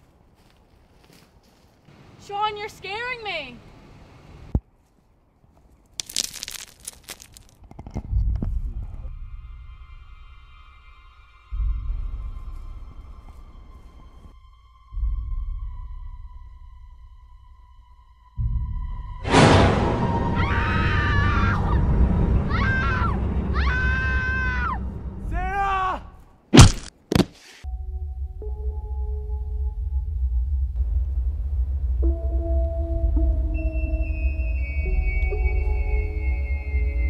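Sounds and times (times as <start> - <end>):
dense crunching and crackling: 5.8 - 8.2
deep low rumble: 7.8 - 25.4, 27.7 - 37.0
eerie music drone: 8.4 - 25.3, 27.7 - 37.0
woman screaming: 22.5 - 24.8.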